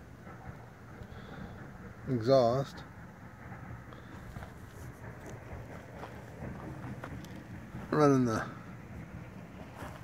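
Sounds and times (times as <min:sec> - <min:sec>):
low outdoor background: 0:00.0 - 0:10.0.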